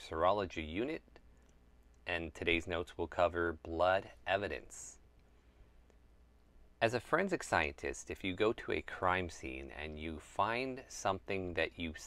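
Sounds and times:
man's voice: 0.0 - 1.0, 2.1 - 5.0, 6.8 - 12.0
faint click: 1.1 - 2.1, 5.2 - 6.5.

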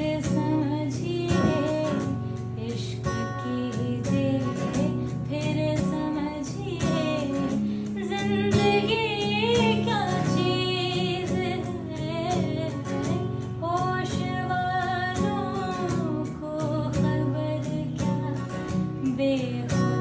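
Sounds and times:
acoustic guitar strumming: 0.0 - 20.0
woman singing: 0.0 - 20.0.

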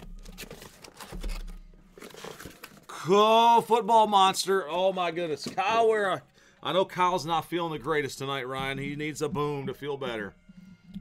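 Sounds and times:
cardboard box being opened: 0.0 - 2.8.

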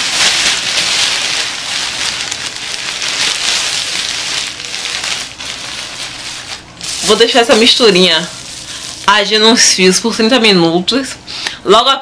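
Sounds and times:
plastic shower cap crinkling: 0.0 - 9.2.

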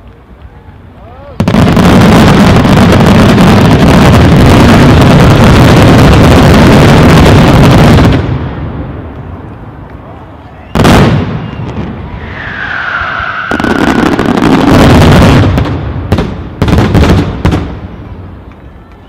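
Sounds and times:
fireworks barrage: 0.0 - 9.1, 10.6 - 18.5
firework whistle: 10.4 - 14.8
loud firework bang: 10.7 - 17.8.

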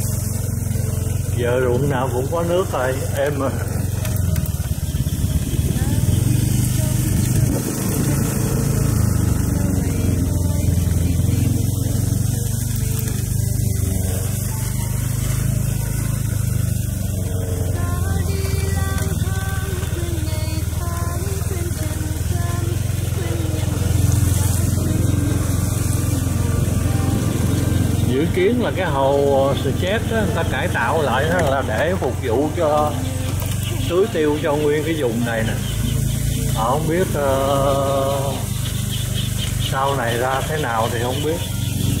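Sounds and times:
motorbike engine running: 0.0 - 42.0
wind noise on microphone: 5.0 - 8.6.

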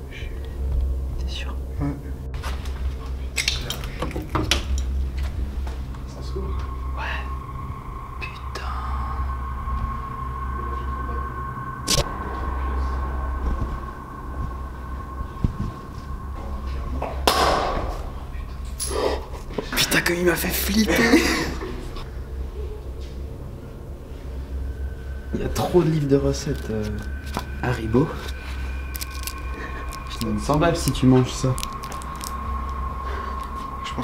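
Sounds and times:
faint high whine: 0.0 - 34.0
low hum: 0.0 - 34.0
steady low rumble: 0.0 - 34.0
sudden loud burst of noise: 4.3 - 18.8
person whispering: 6.1 - 13.8.

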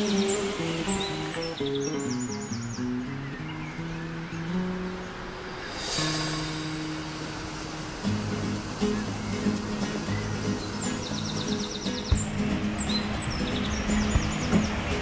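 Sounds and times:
bird chirps and trill: 0.0 - 15.0
music with long low notes: 0.0 - 15.0.

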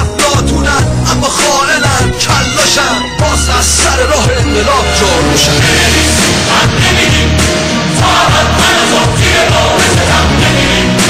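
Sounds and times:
man rapping: 0.0 - 5.7
hip-hop beat with deep bass: 0.0 - 11.0.

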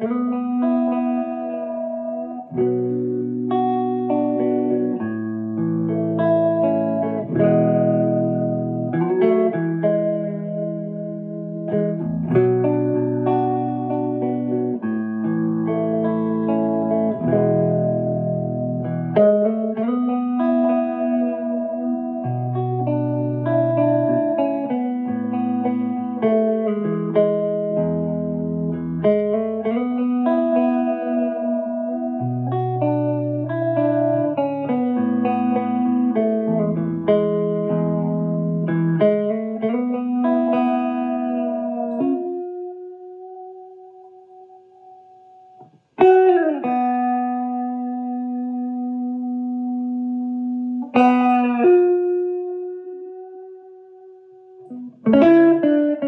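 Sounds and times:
clean electric guitar chords: 0.0 - 56.0.

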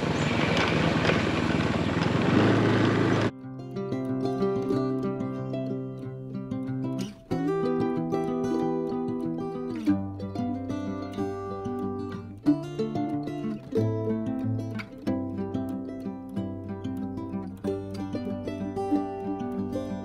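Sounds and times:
moving motorcycle riding noise: 0.0 - 3.3
plucked string music: 3.3 - 20.0.

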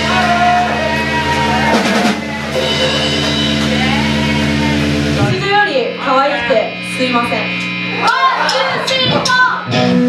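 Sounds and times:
band chord with drums: 0.0 - 10.0
low tone from guitar amplifiers: 0.0 - 10.0.

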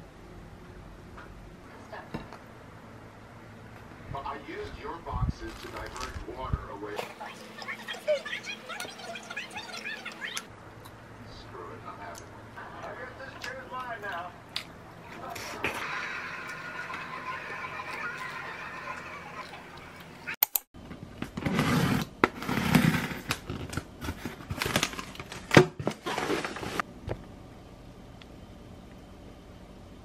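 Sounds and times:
foil bag rustling: 5.4 - 6.3, 24.0 - 26.8
plastic snack packets crinkling: 5.4 - 6.3.

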